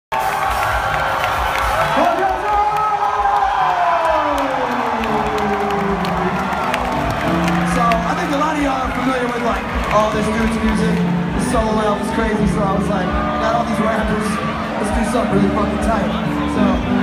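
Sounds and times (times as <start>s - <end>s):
crowd cheering and shouting: 0.1s - 17.0s.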